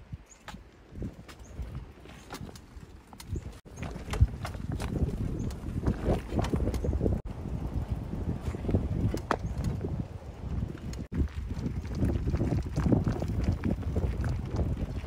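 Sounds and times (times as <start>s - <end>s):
bicycle tyres crunching on gravel: 0.5s - 15.0s.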